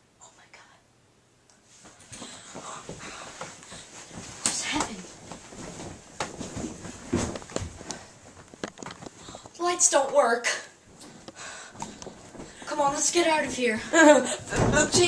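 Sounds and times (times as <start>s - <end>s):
rustling: 1.7s - 9.6s
sharp clicks and knocks: 7.2s - 9.6s.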